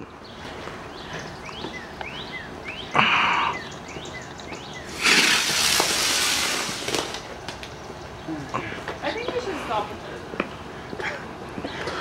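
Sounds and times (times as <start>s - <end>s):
firework hiss of sparks: 4.9s - 7.4s.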